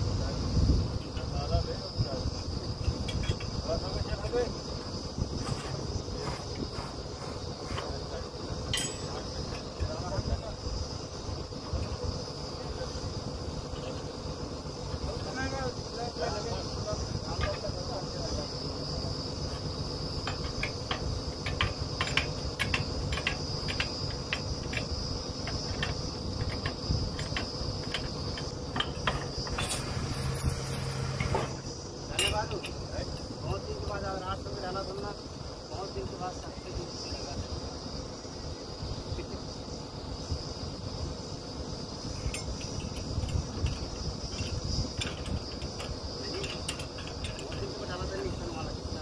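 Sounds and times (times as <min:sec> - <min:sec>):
drilling rig engine rumbling: 0:00.0 - 0:49.0
high-pitched insect trill: 0:00.0 - 0:49.0
sharp metallic clink: 0:08.6 - 0:10.0, 0:28.8 - 0:32.9, 0:42.2 - 0:43.0.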